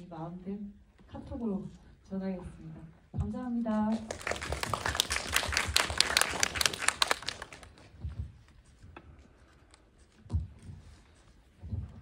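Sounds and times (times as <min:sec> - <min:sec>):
audience applause: 0:04.0 - 0:07.8.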